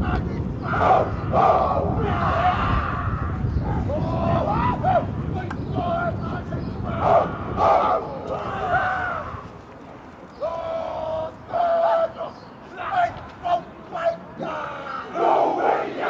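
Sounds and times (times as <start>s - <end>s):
group chanting and shouting: 0.0s - 9.5s, 10.3s - 16.0s.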